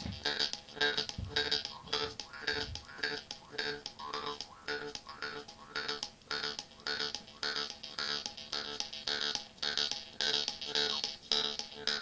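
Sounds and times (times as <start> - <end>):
steady drone: 0.0 - 12.0.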